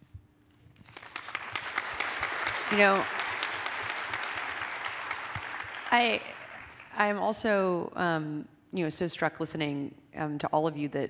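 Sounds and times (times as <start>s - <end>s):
audience applauding: 0.8s - 7.2s.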